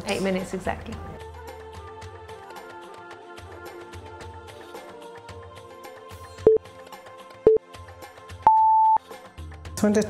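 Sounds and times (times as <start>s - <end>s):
background music: 0.0s - 10.0s
countdown beeps: 8.5s - 9.0s.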